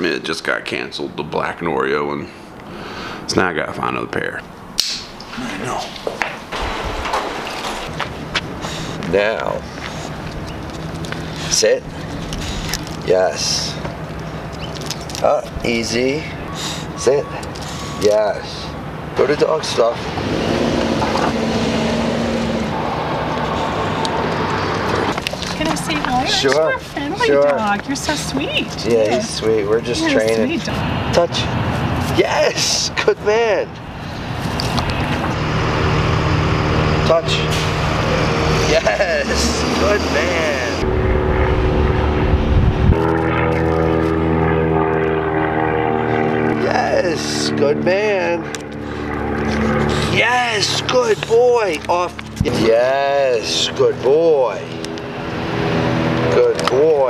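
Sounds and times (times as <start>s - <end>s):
engine drone: 6.5s - 57.0s
passing vehicle rushing: 15.6s - 32.4s, 33.4s - 57.0s
low engine hum: 33.8s - 57.0s
deep rumble: 40.5s - 46.3s.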